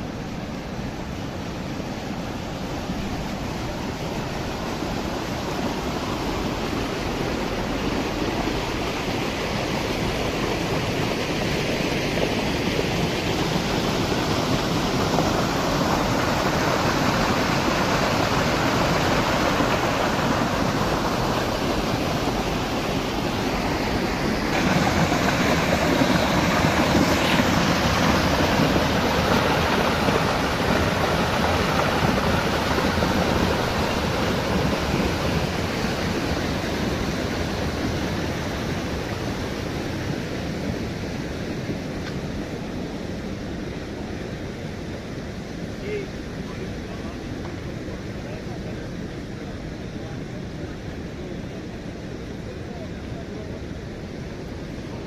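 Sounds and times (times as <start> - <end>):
water rushing over weirs: 0.0 - 55.0.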